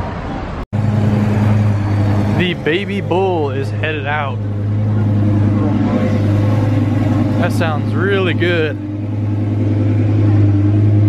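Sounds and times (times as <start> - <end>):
street traffic noise: 0.0 - 11.0
car engine low drone: 0.7 - 11.0.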